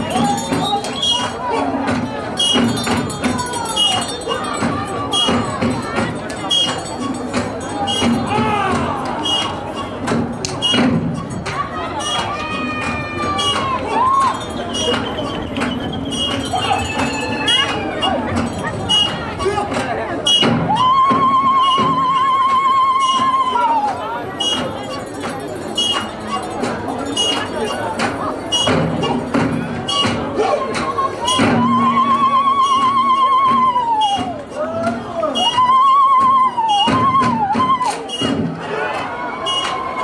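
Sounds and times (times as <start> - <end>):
irregular sharp beats: 0.0 - 32.1, 32.7 - 40.0
dance troupe noise: 0.0 - 40.0
thuds: 36.2 - 38.6.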